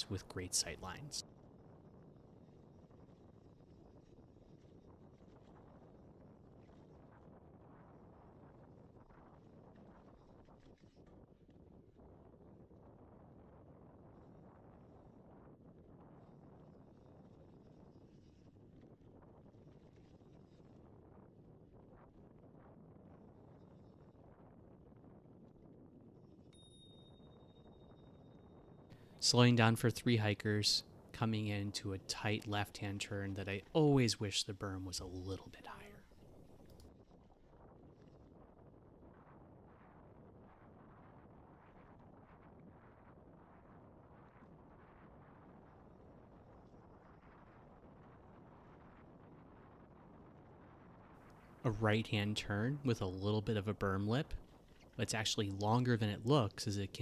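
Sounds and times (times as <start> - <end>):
faint wind: 0.0 - 57.0
faint high tone: 26.6 - 28.8.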